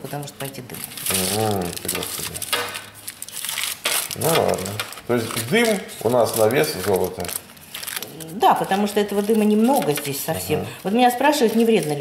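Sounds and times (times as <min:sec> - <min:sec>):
aluminium foil crinkling: 0:00.0 - 0:12.0.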